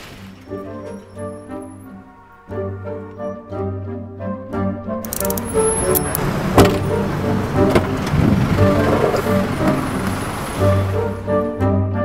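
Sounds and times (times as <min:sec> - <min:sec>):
background music: 0:00.0 - 0:12.0
sharp clicks: 0:05.0 - 0:06.2
car and street traffic: 0:05.1 - 0:11.5.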